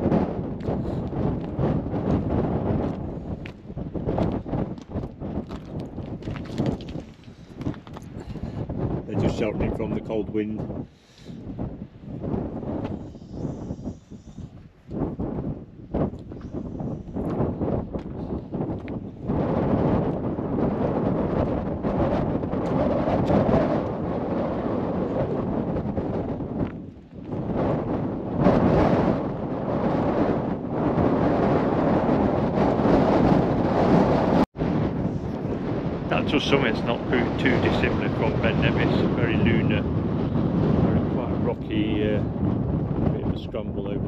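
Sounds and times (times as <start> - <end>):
gusty wind buffeting microphone: 0.0 - 44.0.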